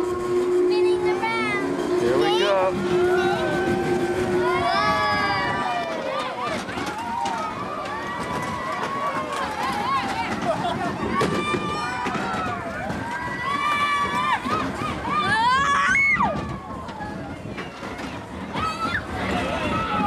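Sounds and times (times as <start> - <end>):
fairground ride rumble: 0.0 - 20.0.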